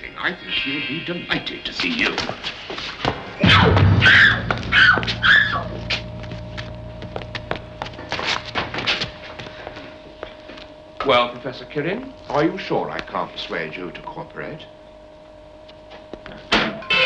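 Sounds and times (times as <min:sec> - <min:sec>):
dramatic music: 0:03.2 - 0:11.0
steady tone: 0:03.2 - 0:16.1.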